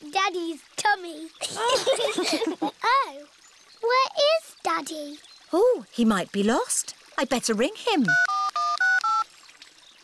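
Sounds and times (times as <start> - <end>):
phone keypad two-tone beeps: 8.1 - 9.2.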